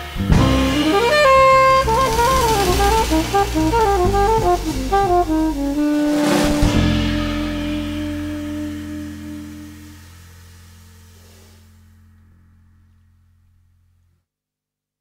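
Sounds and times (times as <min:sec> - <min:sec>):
cymbal crash: 0:00.0 - 0:04.1, 0:05.8 - 0:12.0
drums: 0:00.0 - 0:12.3
double bass: 0:00.0 - 0:14.1
saxophone melody: 0:00.2 - 0:10.4.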